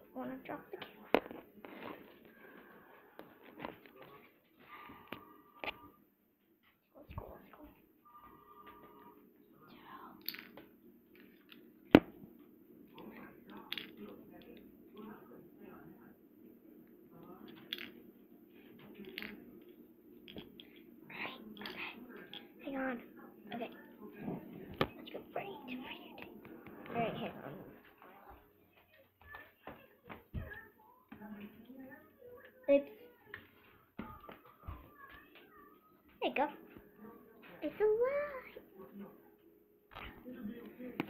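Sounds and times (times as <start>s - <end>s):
child's indistinct voice: 25.0s - 27.4s, 28.7s - 36.6s, 37.6s - 38.6s.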